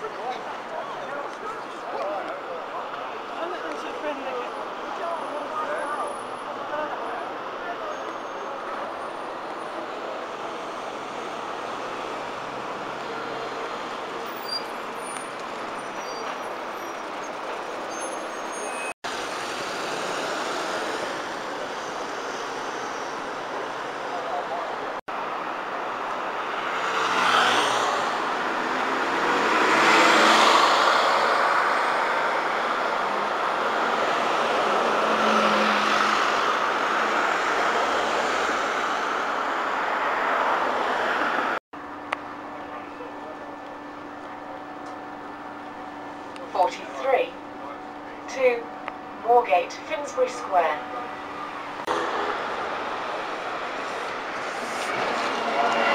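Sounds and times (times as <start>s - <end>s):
buses and cars passing: 0.0s - 55.9s.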